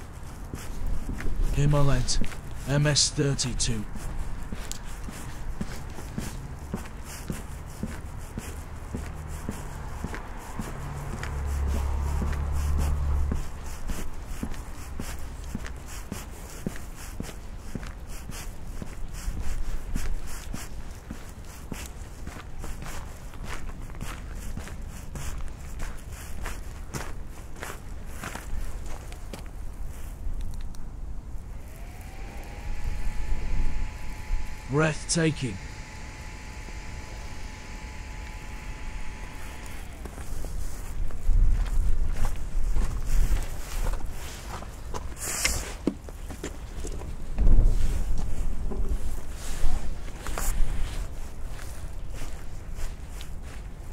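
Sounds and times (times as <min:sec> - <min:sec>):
footsteps on hard path: 0:00.0 - 0:30.6, 0:31.4 - 0:53.9
rising whine: 0:31.4 - 0:41.2
wind rumble on microphone: 0:39.8 - 0:44.3, 0:46.9 - 0:53.9.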